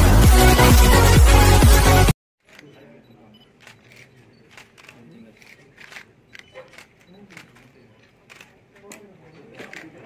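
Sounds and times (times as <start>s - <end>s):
faint room murmur: 2.5s - 10.0s
camera shutters clicking: 3.6s - 10.0s.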